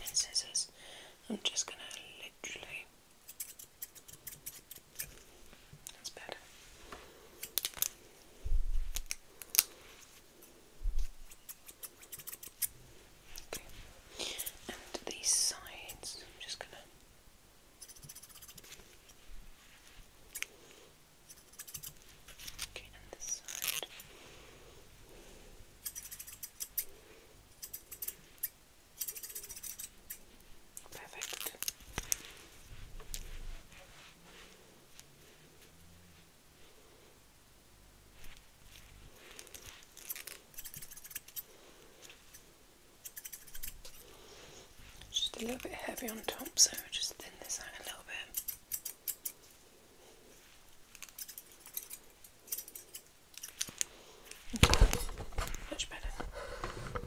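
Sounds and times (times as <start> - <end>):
scissors snipping: 43.0 - 44.0, 48.3 - 49.4, 50.9 - 53.9.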